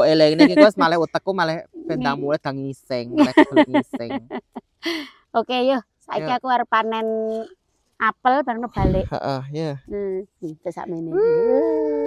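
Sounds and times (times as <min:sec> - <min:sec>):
woman making vocal sounds: 0:00.2 - 0:01.0, 0:01.8 - 0:02.4, 0:03.1 - 0:07.5, 0:08.6 - 0:09.3, 0:10.9 - 0:12.0.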